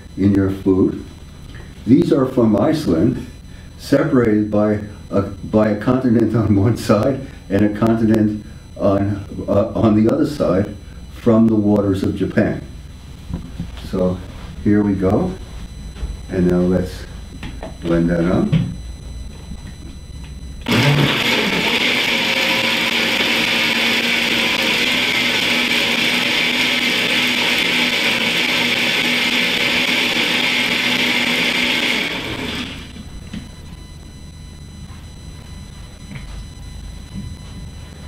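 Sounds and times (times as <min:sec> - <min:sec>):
blender motor humming: 0:20.6 - 0:33.1.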